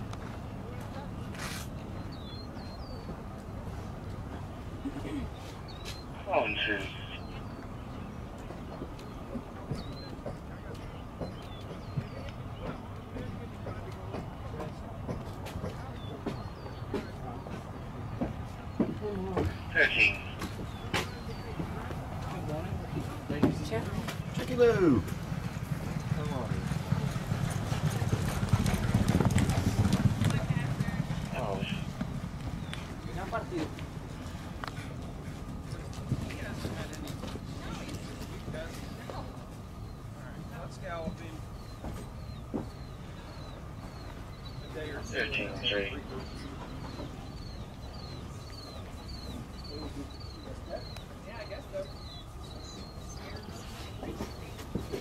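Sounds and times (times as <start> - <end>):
horses galloping on dirt: 0.0 - 55.0
low outdoor rumble: 0.0 - 55.0
galloping hoofbeats on dirt: 8.4 - 19.6, 20.5 - 34.2.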